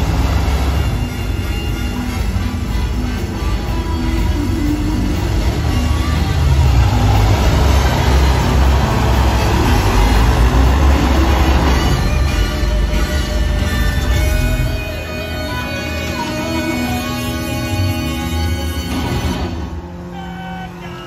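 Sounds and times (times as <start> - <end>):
airboat engine and propeller rumble: 0.0 - 21.0
show music over loudspeakers: 0.0 - 21.0.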